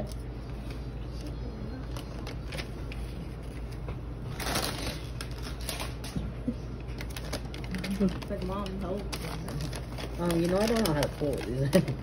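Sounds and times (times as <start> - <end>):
wrapping paper crinkling: 0.0 - 12.0
paper ripping: 1.9 - 6.2, 7.0 - 12.0.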